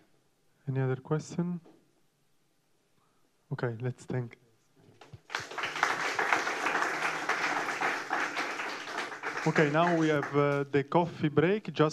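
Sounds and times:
audience applauding: 5.0 - 10.7.

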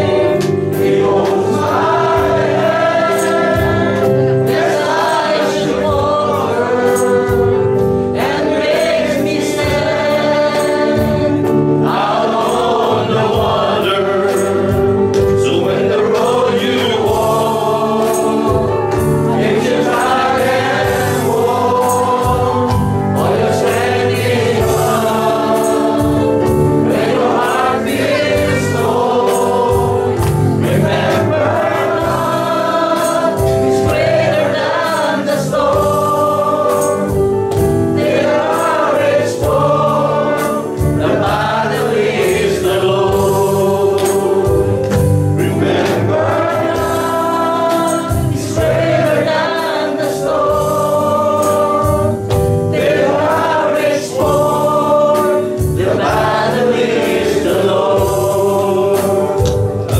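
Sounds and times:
congregation singing: 0.0 - 59.9.

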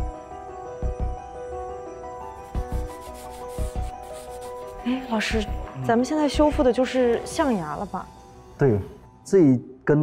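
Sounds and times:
soft background music: 0.0 - 10.0
brush scrubbing ivory: 2.4 - 5.5.

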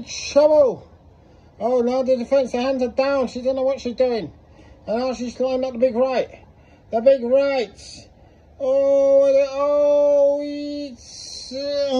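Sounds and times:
man exclaiming ohhh: 8.6 - 11.9.

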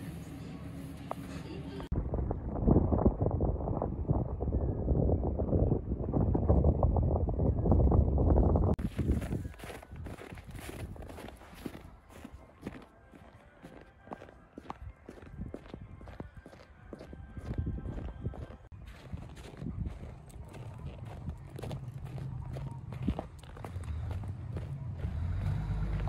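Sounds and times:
footsteps in snow: 8.8 - 26.0.

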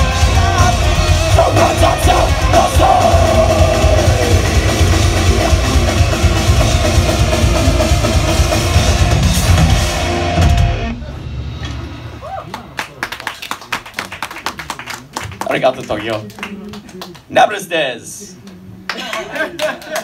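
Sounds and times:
heavy metal band playing live: 0.0 - 12.2.

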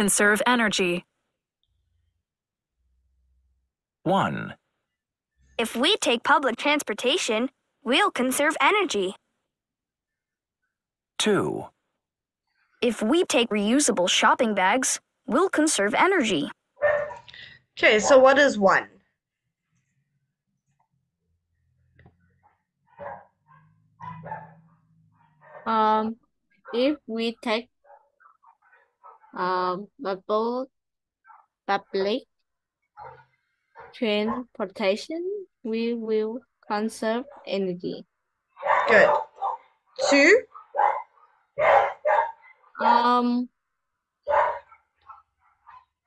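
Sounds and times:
dog barking: 16.8 - 17.4, 22.9 - 25.7, 33.0 - 34.5, 38.6 - 39.8, 40.4 - 43.0, 44.3 - 45.9.

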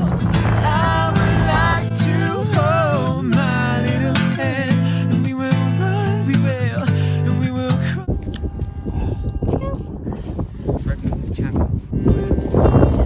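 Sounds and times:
wind buffeting microphone: 0.0 - 3.5, 7.6 - 13.0
guitar music with singing: 0.0 - 9.9, 12.0 - 13.0.

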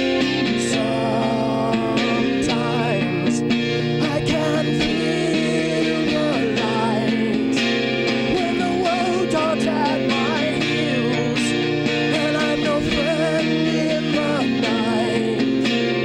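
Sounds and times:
acoustic guitar chords: 0.0 - 16.0
man singing: 0.0 - 16.0.

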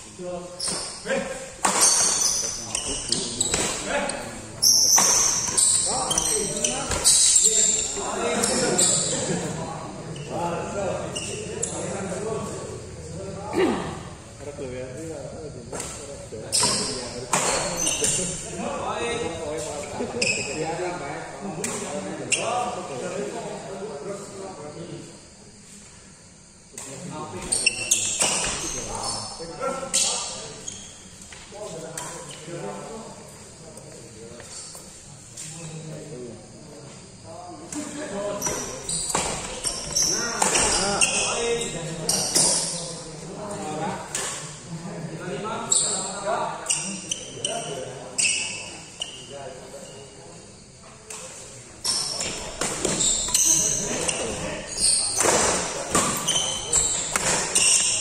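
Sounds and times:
rackets hitting shuttlecock: 1.6 - 2.5, 55.1 - 58.0
racket hitting shuttlecock: 57.1 - 57.6.

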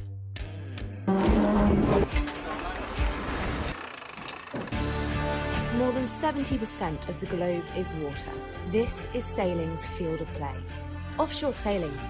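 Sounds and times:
sailboat winch whirring: 3.0 - 4.8
background music: 4.6 - 12.0.

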